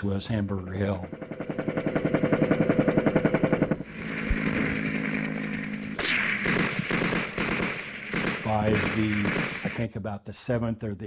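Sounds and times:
fast even rattle: 0.7 - 5.9
steady drone: 0.7 - 9.8
sharp crack: 3.9 - 9.9.

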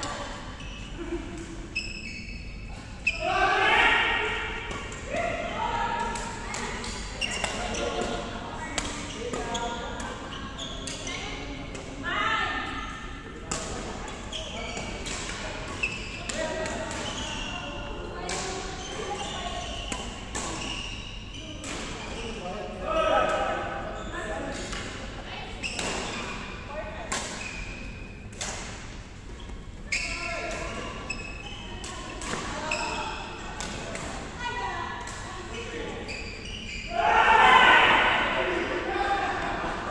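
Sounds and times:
people talking: 5.1 - 12.8, 13.4 - 20.2, 36.9 - 39.9.

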